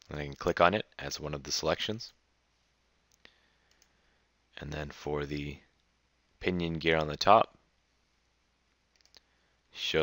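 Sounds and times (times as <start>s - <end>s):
faint computer mouse clicks: 3.1s - 4.0s, 8.9s - 9.3s.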